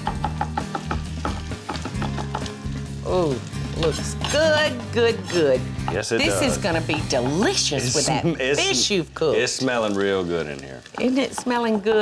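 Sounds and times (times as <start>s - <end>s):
background music with low bass: 0.0s - 9.6s.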